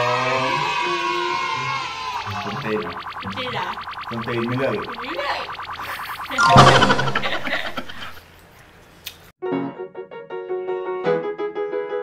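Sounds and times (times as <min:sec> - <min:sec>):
voices: 0:00.0 - 0:08.2
outro music: 0:06.4 - 0:08.1.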